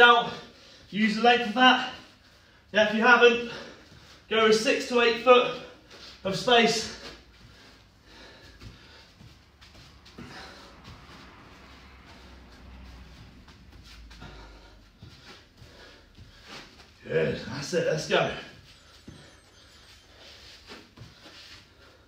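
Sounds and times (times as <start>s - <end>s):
faint breathing: 5.5s - 17.0s
low room rumble: 5.6s - 22.0s
hands and shoes scuffing on turf: 6.0s - 21.9s.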